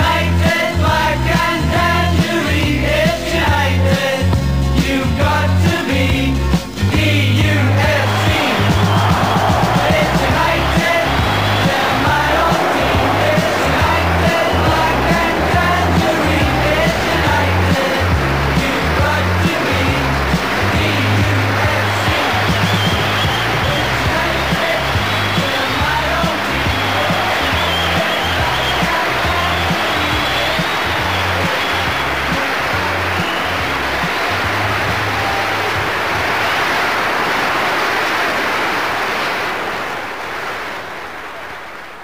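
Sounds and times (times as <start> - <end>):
music with pulsing bass line: 0.0 - 35.2.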